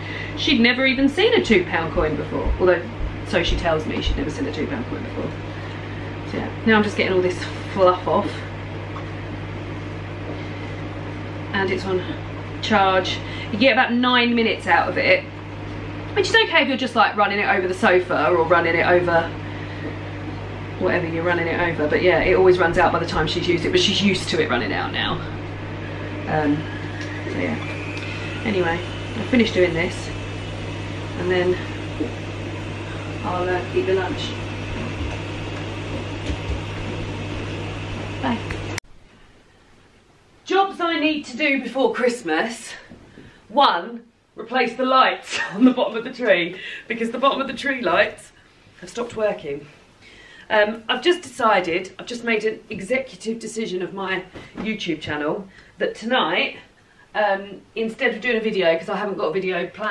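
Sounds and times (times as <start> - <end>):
kitchen appliance electrical hum: 0.0 - 59.9.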